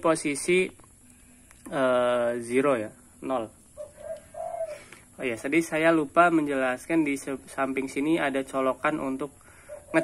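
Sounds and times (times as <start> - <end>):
bird cooing: 3.7 - 5.1, 9.5 - 10.0.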